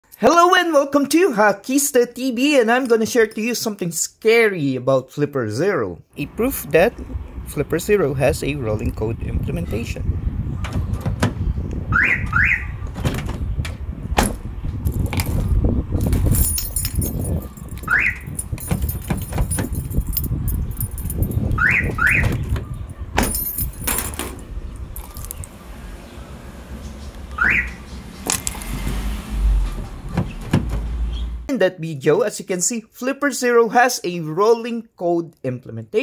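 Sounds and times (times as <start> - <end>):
steady low rumble: 11.4 - 31.5
car alarm chirps: 11.9 - 12.8, 17.5 - 18.3, 21.5 - 22.9, 25.1 - 28.4, 29.6 - 31.5.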